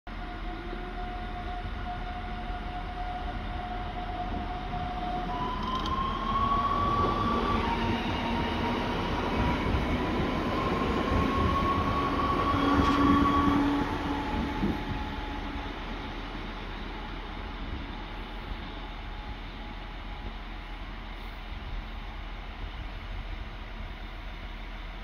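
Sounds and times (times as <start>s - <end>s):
electric train traction whine: 0.1s - 24.8s
low train rumble: 0.1s - 25.0s.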